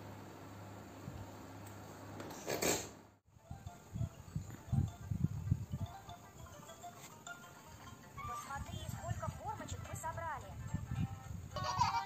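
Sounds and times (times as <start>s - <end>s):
music from a smartphone: 3.3s - 12.0s.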